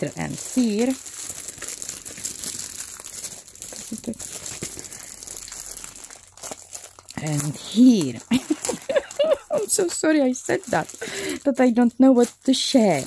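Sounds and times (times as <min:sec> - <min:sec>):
plastic packaging crinkling: 0:00.0 - 0:13.0.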